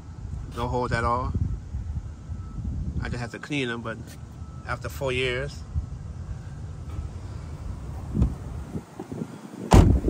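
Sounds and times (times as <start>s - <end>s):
wind rumbling on microphone: 0.0s - 10.0s
soft thump: 8.1s - 8.4s, 9.7s - 10.0s.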